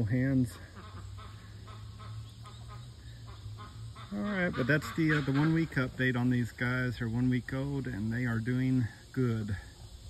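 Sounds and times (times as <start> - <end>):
ducklings peeping: 0.0 - 8.8
steady low hum: 0.0 - 10.0.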